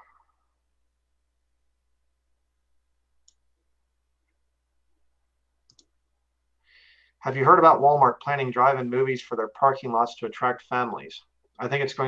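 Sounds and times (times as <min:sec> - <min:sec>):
faint clicks: 0:05.7 - 0:05.9.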